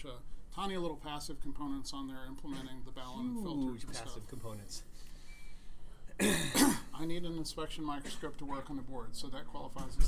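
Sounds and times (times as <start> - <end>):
man coughing: 6.1 - 7.0, 8.0 - 8.7.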